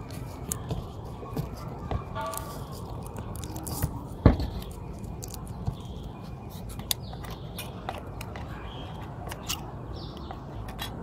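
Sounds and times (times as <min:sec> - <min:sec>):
film peeling from adhesive tape: 0:02.3 - 0:05.9.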